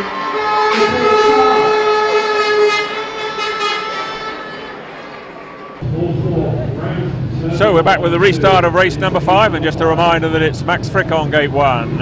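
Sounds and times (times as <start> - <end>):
crowd noise: 0.0 - 12.0
horn holding a steady note: 0.2 - 4.9.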